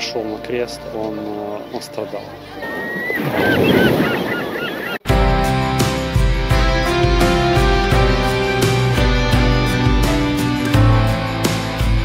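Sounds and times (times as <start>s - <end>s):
gulls calling: 1.0s - 5.1s
surf washing: 2.6s - 5.0s
music with steady beat: 5.1s - 12.0s.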